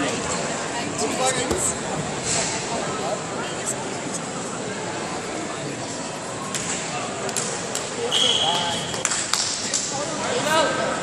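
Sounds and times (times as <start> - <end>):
high whistle: 8.1 - 8.9.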